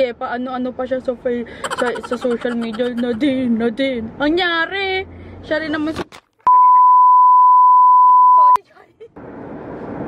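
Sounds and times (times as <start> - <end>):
censor bleep tone: 6.5 - 8.6.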